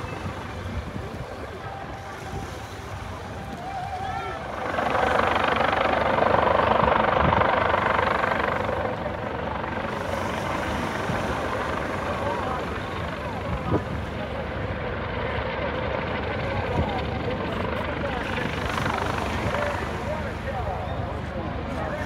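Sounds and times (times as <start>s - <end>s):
helicopter hovering: 0.0s - 22.0s.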